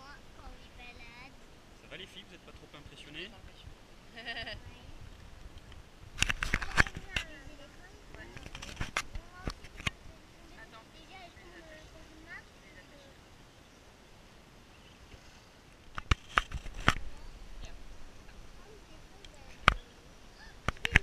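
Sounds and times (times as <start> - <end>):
small children's voices: 0.0 - 1.4, 6.6 - 13.2, 18.5 - 21.0.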